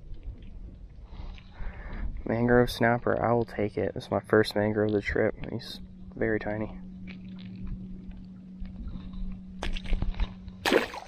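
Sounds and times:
steady low hum: 0.0s - 11.0s
fish splashing into water: 10.6s - 11.0s.

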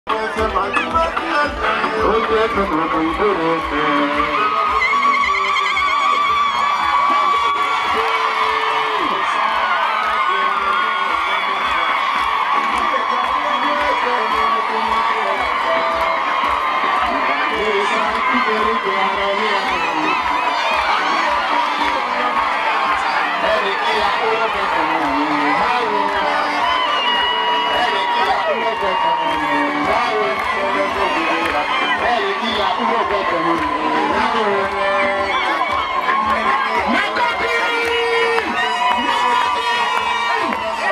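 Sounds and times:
crowd cheering and shouting: 0.0s - 40.9s
loud dance music: 0.0s - 40.9s.

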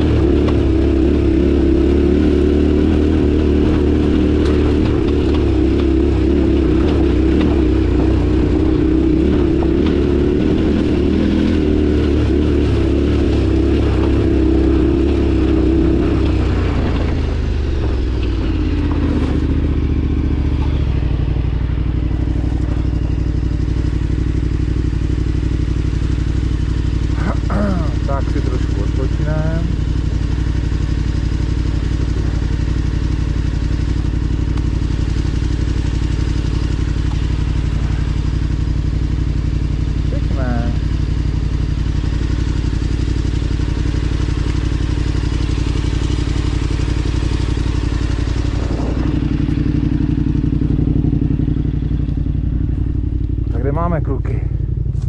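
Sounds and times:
motorcycle engine idling: 0.0s - 55.0s.

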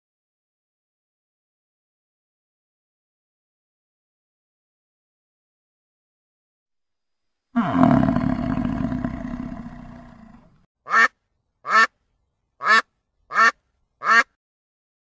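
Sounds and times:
bison low call: 7.6s - 10.6s.

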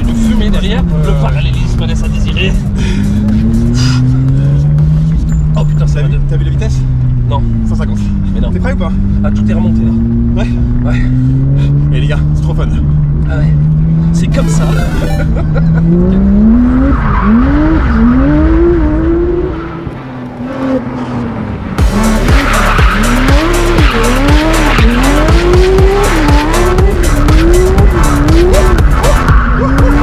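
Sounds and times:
car engine revving: 0.0s - 30.0s.

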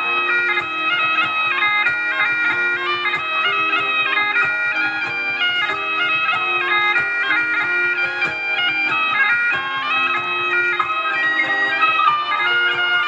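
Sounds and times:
bagpipes playing dance tune: 0.0s - 13.0s.

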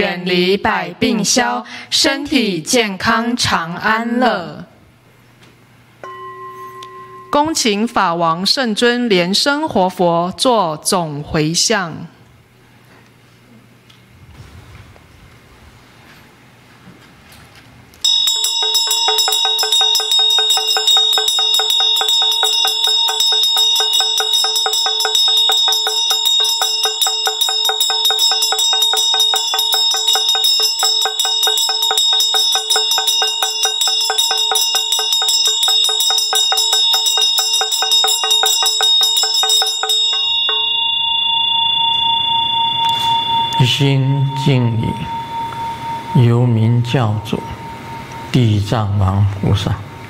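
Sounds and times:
hand bell ringing rapidly: 6.0s - 7.6s, 18.0s - 48.3s
man chanting: 43.6s - 45.2s, 46.2s - 47.7s, 48.3s - 50.0s.

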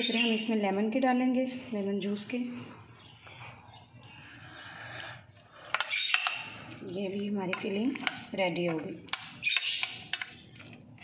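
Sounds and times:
spoon stirring creamy filling: 5.3s - 11.0s.

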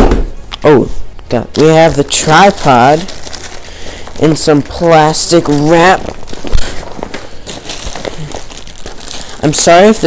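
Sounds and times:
plastic wrap crinkling: 1.3s - 10.0s.

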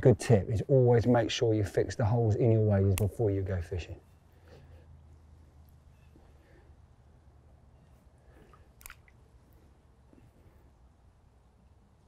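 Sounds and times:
rake swishing through water: 8.3s - 9.5s.

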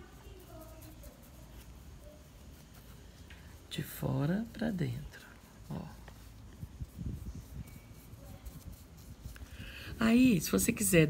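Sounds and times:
faint rustle: 0.0s - 11.0s
paintbrush dabbing: 0.0s - 11.0s.

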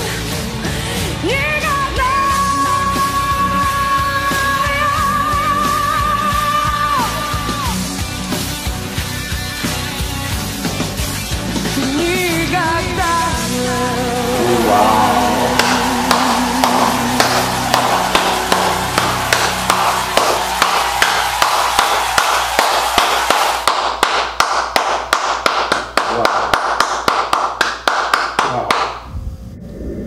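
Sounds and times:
pop song: 0.1s - 7.9s, 11.6s - 19.5s.

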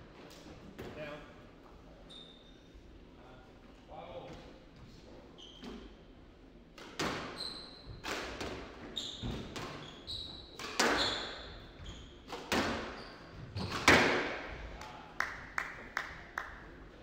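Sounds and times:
squash ball hitting rackets and walls: 6.8s - 14.6s
shoes squeaking on wooden floor: 7.2s - 8.1s, 8.8s - 14.0s.

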